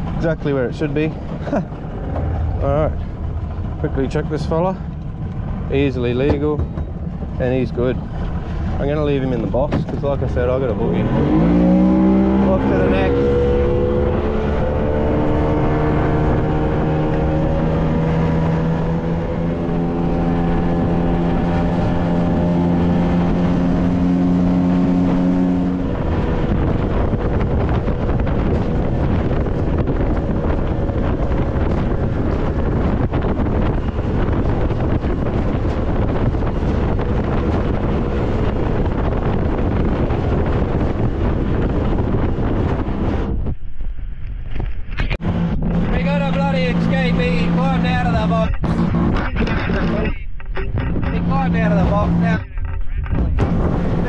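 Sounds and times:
choppy water against hull: 0:00.0 - 0:10.8, 0:25.8 - 0:43.6
outboard motor running: 0:00.0 - 0:43.4, 0:44.9 - 0:54.0
wind buffeting microphone: 0:00.0 - 0:54.0.

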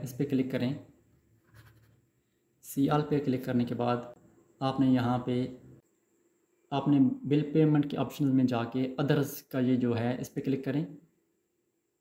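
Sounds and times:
man narrating: 0:00.0 - 0:00.8, 0:02.6 - 0:05.6, 0:06.7 - 0:11.0.

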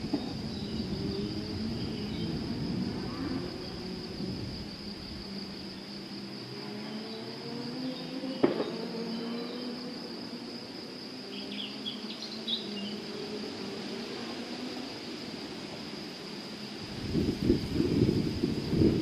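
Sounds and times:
cricket trill: 0:00.0 - 0:19.0.

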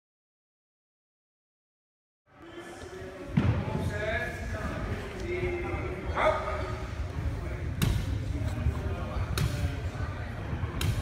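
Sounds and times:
sports hall ambience: 0:02.3 - 0:11.0.

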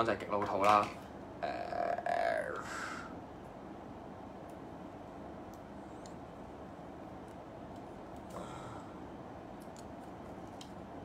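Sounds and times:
man's creaky low vocal sound: 0:01.4 - 0:03.1.

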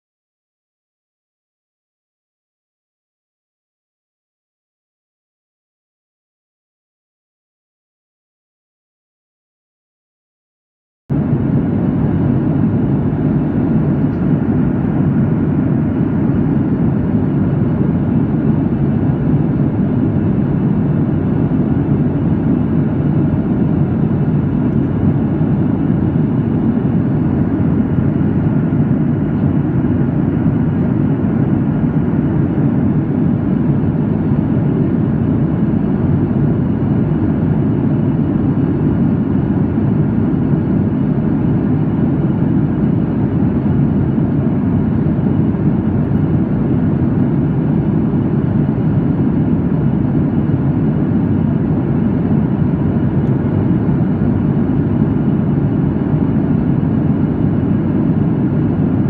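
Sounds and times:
airplane cabin engine rush: 0:11.1 - 0:59.0.

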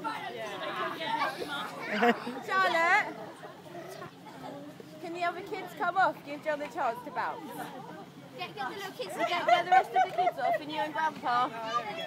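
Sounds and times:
chatter of children's voices: 0:00.0 - 0:12.0.

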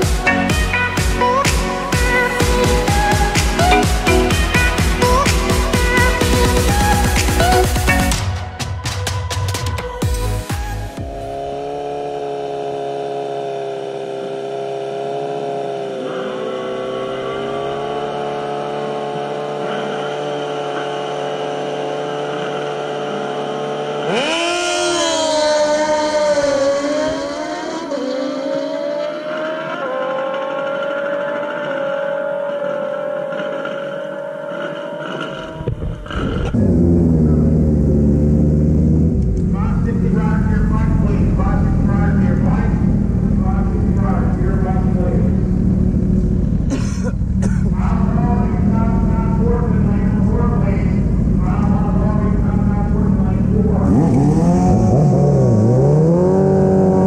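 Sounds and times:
motorcycle engine revving: 0:00.0 - 0:57.0
onboard engine sound: 0:11.1 - 0:57.0.

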